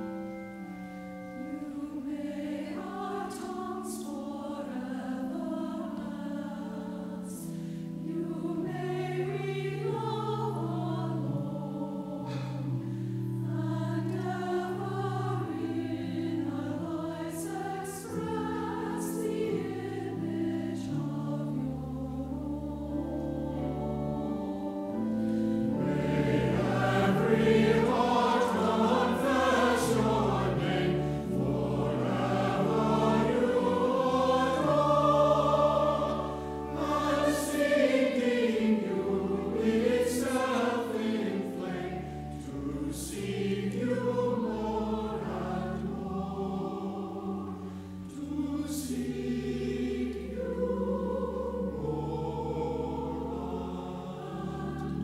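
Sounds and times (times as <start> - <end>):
church choir singing: 0.0 - 55.0.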